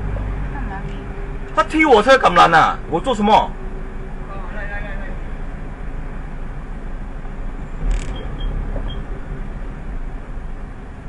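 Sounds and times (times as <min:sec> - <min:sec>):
car cabin low rumble: 0:04.2 - 0:11.0.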